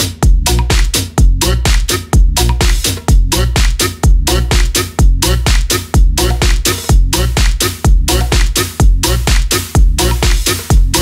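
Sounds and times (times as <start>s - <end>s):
kick drum: 0.0s - 11.0s
minimal tech house music: 0.0s - 11.0s
repeating pitched riff: 0.0s - 11.0s.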